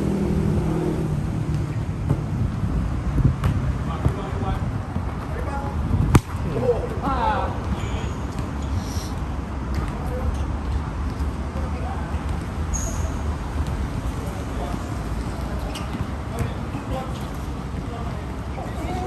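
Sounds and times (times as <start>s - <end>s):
football being kicked: 3.2s - 5.1s, 6.0s - 6.6s.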